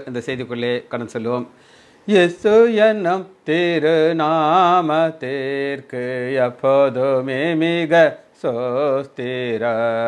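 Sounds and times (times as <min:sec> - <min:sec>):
man singing a prayer song: 0:00.0 - 0:10.0.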